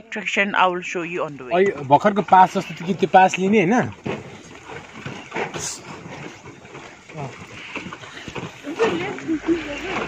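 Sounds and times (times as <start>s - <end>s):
faint voices of people walking: 3.9s - 10.0s.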